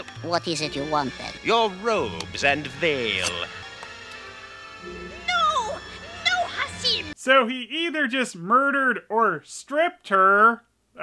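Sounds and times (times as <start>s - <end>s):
soft background music: 0.0s - 7.2s.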